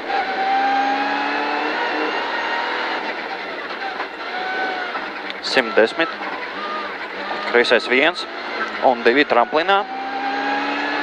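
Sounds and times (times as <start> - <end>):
turbocharged car engine running hard: 0.0 - 11.0.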